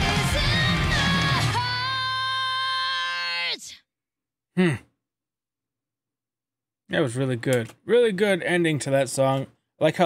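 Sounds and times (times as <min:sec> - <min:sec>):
person sighing: 0:04.6 - 0:05.0.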